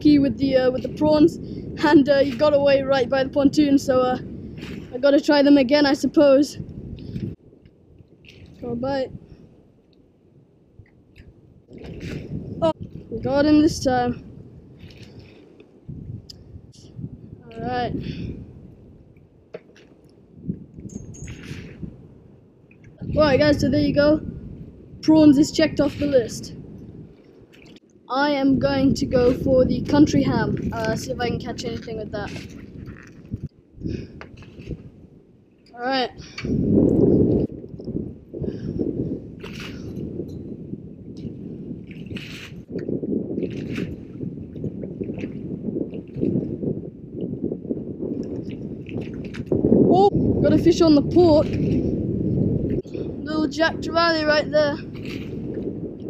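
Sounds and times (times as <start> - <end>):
water lapping against boat hull: 0.0 - 10.1, 10.7 - 16.5, 19.0 - 22.0, 22.6 - 24.1, 25.0 - 37.9, 39.3 - 40.4, 41.1 - 46.6, 48.1 - 51.9, 52.7 - 56.0.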